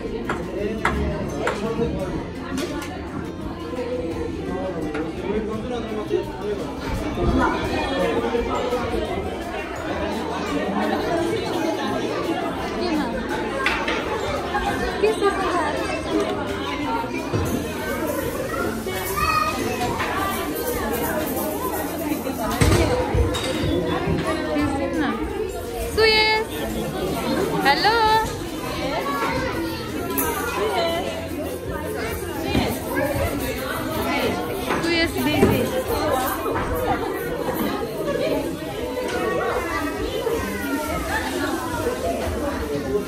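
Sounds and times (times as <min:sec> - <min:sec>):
adults and children chattering: 0:00.0 - 0:43.0.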